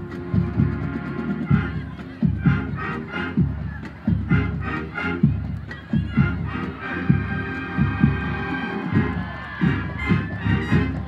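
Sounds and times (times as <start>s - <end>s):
crowd cheering: 0.0s - 11.0s
marching band playing: 0.0s - 11.0s.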